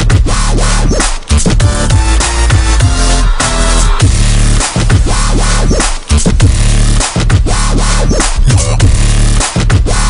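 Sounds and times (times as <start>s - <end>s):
electronic music with heavy bass: 0.0s - 10.0s.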